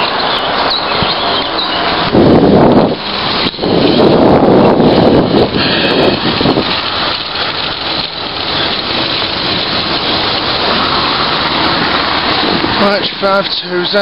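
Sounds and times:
wind rushing over microphone: 0:00.0 - 0:14.0.

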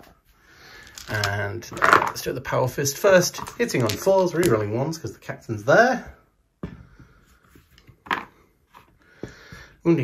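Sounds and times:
plastic dice clicking: 0:00.8 - 0:02.2, 0:03.4 - 0:04.7.

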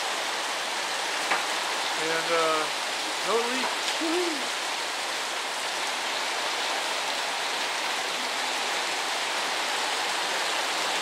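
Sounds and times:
heavy rain on a metal roof: 0:00.0 - 0:11.0.

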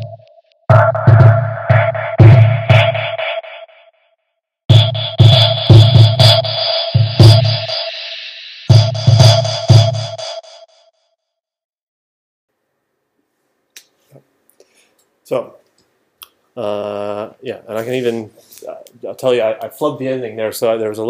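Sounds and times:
electronic music with sampled beats: 0:00.0 - 0:03.6, 0:04.7 - 0:10.6.

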